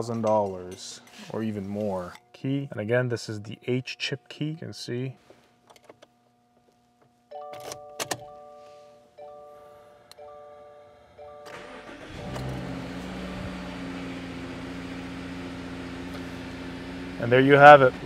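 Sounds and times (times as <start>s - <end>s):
repeating dashboard chime: 7.4s - 15.1s
key clicking in ignition: 7.5s - 8.2s
car engine cranking and starting: 11.4s - 18.0s
car engine idling: 11.5s - 18.0s.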